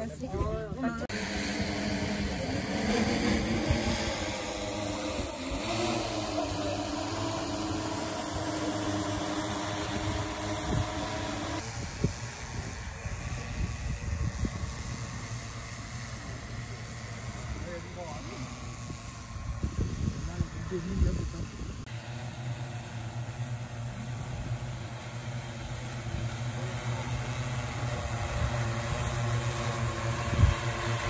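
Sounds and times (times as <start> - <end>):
drone propellers humming: 0.0 - 31.0.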